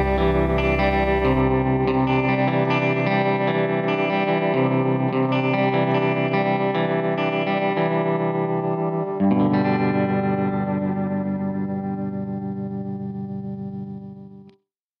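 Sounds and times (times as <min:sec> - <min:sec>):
guitar chords with effects: 0:00.0 - 0:14.6.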